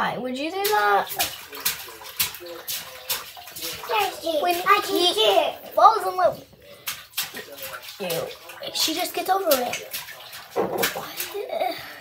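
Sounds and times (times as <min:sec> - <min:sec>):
water running and sloshing: 0:00.1 - 0:12.0
water splashing: 0:00.4 - 0:12.0.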